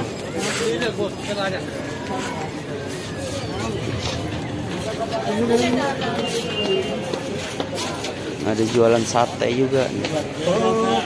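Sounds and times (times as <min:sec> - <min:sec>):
people talking: 0:00.0 - 0:11.0
street bustle: 0:00.0 - 0:11.0.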